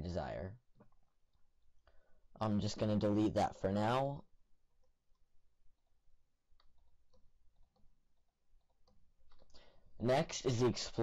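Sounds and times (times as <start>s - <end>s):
computer mouse clicks: 6.5s - 9.6s.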